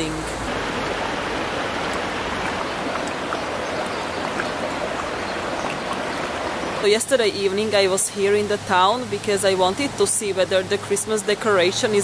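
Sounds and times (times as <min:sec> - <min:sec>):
flowing water rushing: 0:00.0 - 0:12.0.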